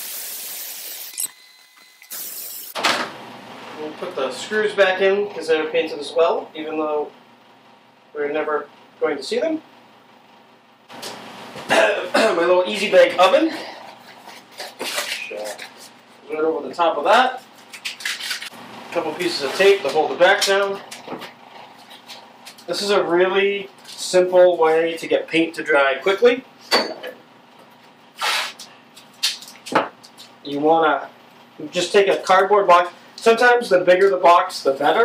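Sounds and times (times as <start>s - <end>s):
masking tape ripping off roll: 17.6s - 18.6s, 28.2s - 29.7s.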